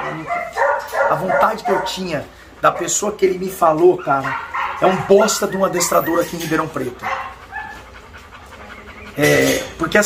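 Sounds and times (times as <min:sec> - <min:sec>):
faint dog sounds: 0:00.0 - 0:10.0.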